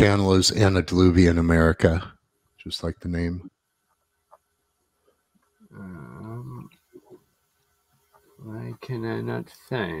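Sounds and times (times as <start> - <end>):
person humming: 5.7 - 6.7.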